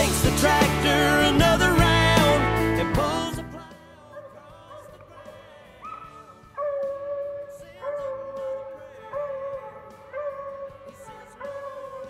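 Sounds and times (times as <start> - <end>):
hounds baying: 4.0 - 12.0.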